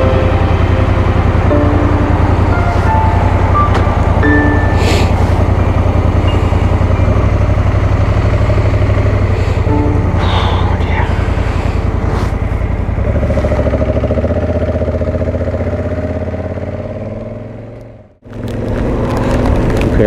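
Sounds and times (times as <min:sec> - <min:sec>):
background music: 0:00.0 - 0:12.8
motorcycle engine idling: 0:00.0 - 0:18.7.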